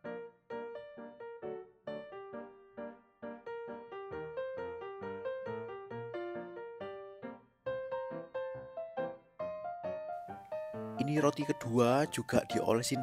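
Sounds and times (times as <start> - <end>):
light keyboard melody: 0.0 - 13.0.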